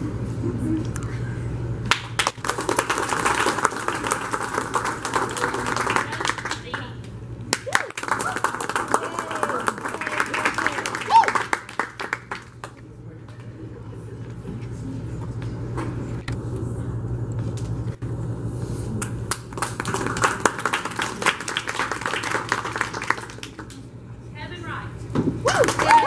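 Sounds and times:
low hum and murmur: 0:00.0 - 0:26.0
audience applauding: 0:01.9 - 0:06.9, 0:07.5 - 0:12.7, 0:19.3 - 0:23.8, 0:25.5 - 0:26.0.

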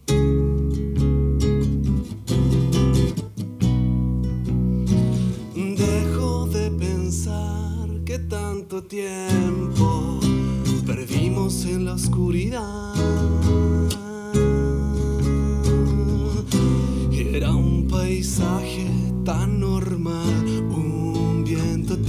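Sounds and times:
deep electric bass notes: 0:00.0 - 0:08.6, 0:09.4 - 0:22.0
classical guitar plucked notes: 0:00.0 - 0:22.0.

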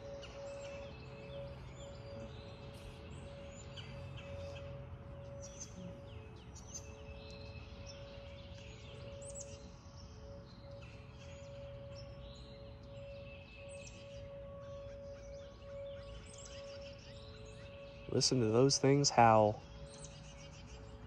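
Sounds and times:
birds chirping: 0:00.0 - 0:21.0
distant warning sirens: 0:00.0 - 0:21.0.

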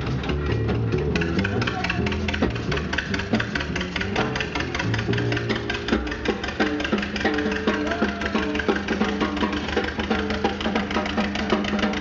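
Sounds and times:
jazz band playing: 0:00.0 - 0:12.0.

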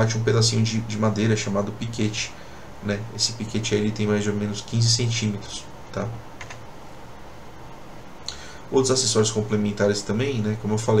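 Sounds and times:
low background hum: 0:00.0 - 0:11.0
computer keyboard clicks: 0:06.4 - 0:06.6.

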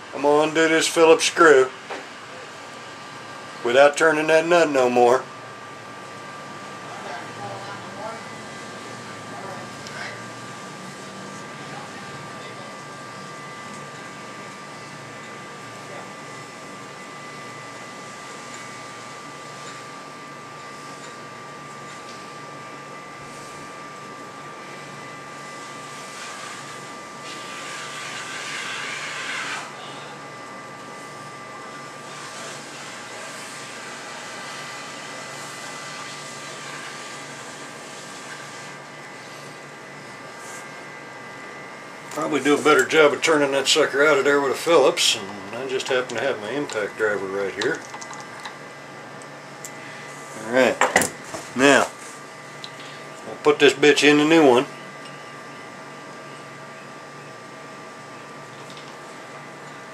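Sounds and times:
machine hum with thin whine: 0:00.0 - 0:59.9
loud rasping noise: 0:27.3 - 0:29.7.

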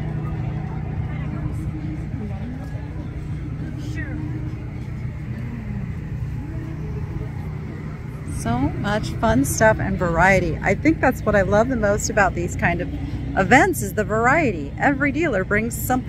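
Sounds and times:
faint voices: 0:00.0 - 0:16.0
low engine hum: 0:00.0 - 0:16.0.

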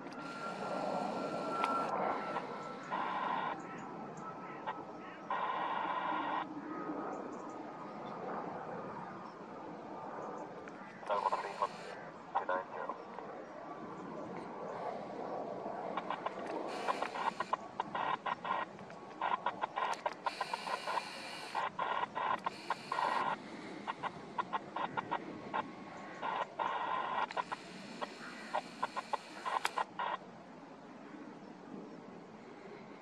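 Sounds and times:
chickens clucking: 0:16.0 - 0:30.2.

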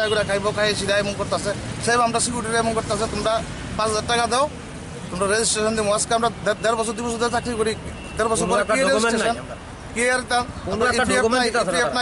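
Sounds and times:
man speaking: 0:05.1 - 0:12.0.

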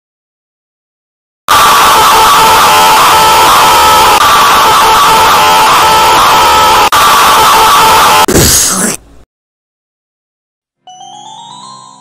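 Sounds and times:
distorted scream: 0:01.5 - 0:09.0.

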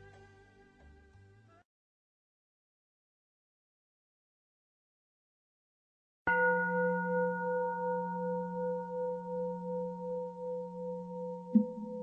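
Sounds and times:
bowl bell ringing: 0:06.3 - 0:12.0.

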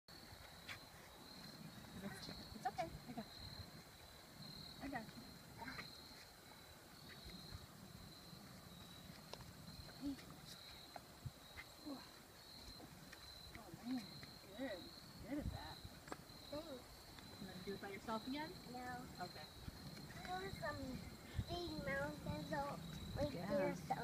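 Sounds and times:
high-pitched pulsing insect chorus: 0:00.1 - 0:24.0.

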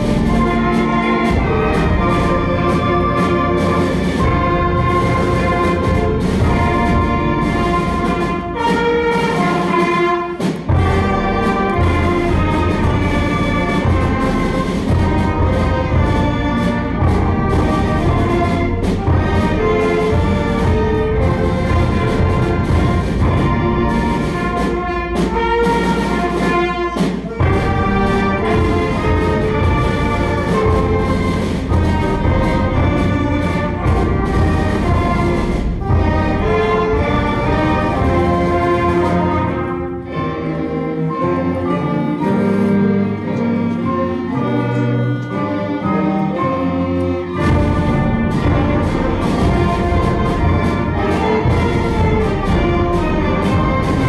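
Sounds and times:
concert band playing held chords: 0:00.0 - 0:42.5, 0:43.2 - 0:54.0.

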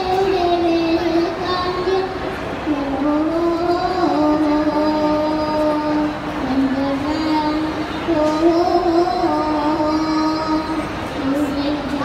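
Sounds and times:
boy singing into microphone: 0:00.0 - 0:12.0
steady background hum: 0:00.0 - 0:12.0.

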